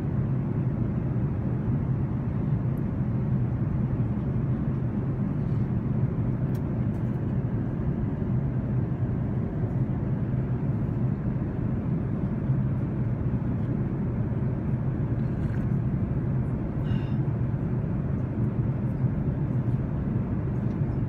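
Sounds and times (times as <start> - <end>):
airplane cabin engine and airflow noise: 0.0 - 21.0.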